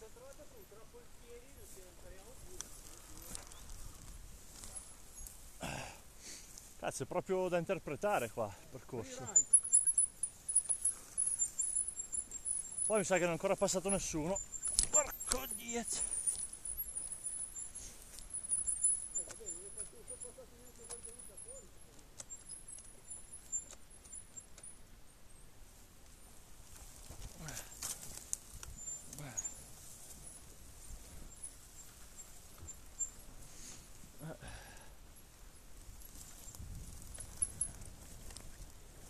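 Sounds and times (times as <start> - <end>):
faint wavering motorcycle engine: 0.0 - 6.8, 8.5 - 25.6
knocks and rattles on rough ground: 6.6 - 24.8, 26.6 - 34.2, 35.8 - 39.0.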